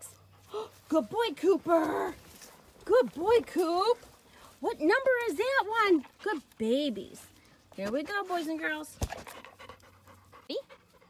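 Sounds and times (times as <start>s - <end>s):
dog panting: 0.0s - 2.9s, 3.7s - 11.0s.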